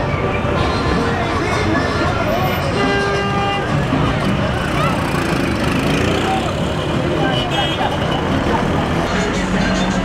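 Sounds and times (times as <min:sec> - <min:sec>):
music: 0:00.0 - 0:04.5
voices: 0:00.1 - 0:10.0.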